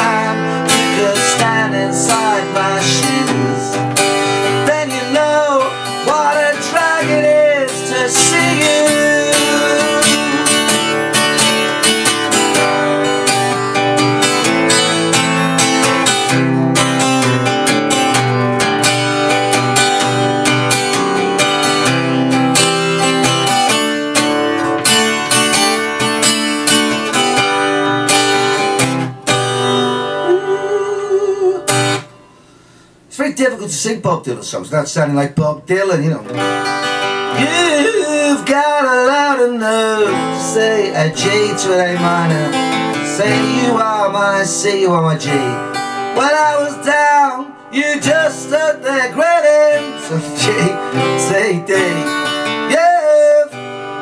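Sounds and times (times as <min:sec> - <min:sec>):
acoustic guitar strumming chords: 0:00.0 - 0:34.7, 0:35.3 - 0:54.0.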